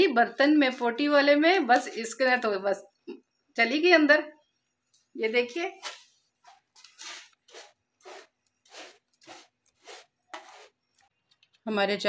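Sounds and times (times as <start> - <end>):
cat digging in litter: 6.9 - 10.8.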